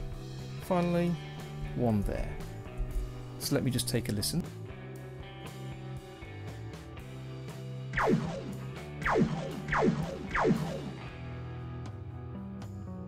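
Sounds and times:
guitar background music: 0:00.0 - 0:13.0
cartoon laser zaps: 0:08.0 - 0:11.0.

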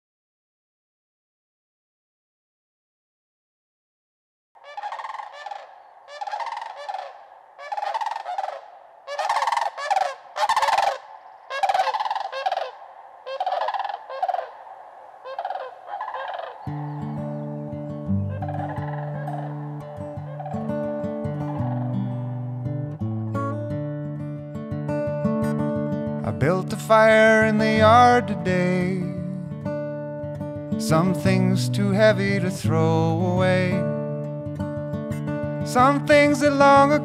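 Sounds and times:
cranes calling: 0:04.6 - 0:22.8
low sustained musical notes: 0:16.6 - 0:23.3.

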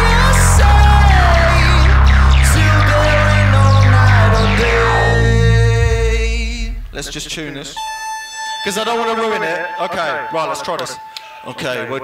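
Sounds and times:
deep synth bass note: 0:00.0 - 0:08.0
falling synth sweeps: 0:00.0 - 0:08.6.

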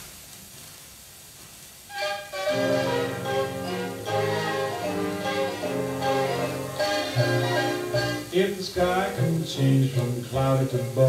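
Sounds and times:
record surface hiss: 0:00.0 - 0:11.0
orchestra playing: 0:01.9 - 0:10.0.

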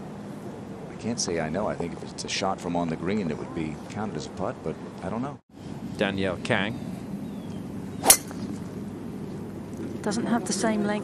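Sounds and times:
golf club striking ball: 0:08.0 - 0:08.7.

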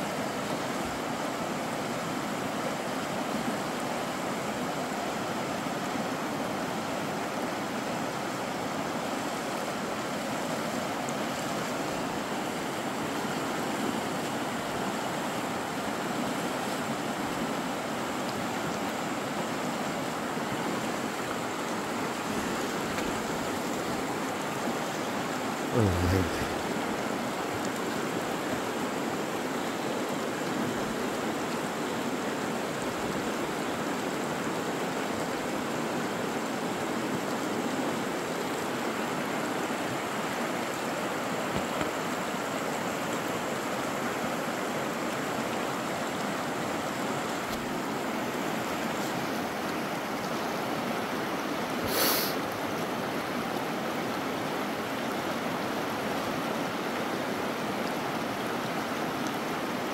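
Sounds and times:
river rushing over rocks: 0:00.0 - 0:59.9.

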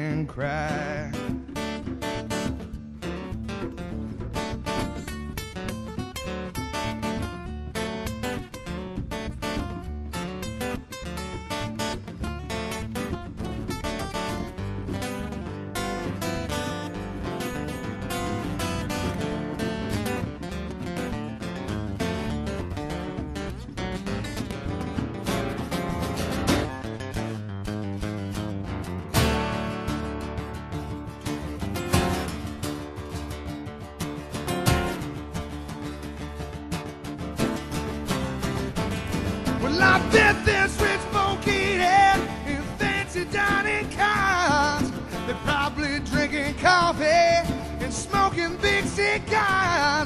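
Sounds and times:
acoustic guitars strumming: 0:00.0 - 0:50.0
hand drum: 0:00.6 - 0:27.2, 0:28.0 - 0:50.0.

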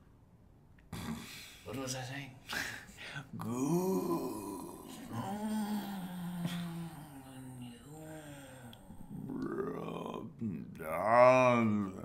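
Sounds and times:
man groaning: 0:03.4 - 0:12.0.

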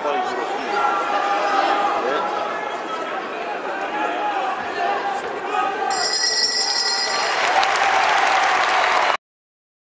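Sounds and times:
bell ringing: 0:05.9 - 0:07.9
crowd applause and cheering: 0:05.9 - 0:09.2.

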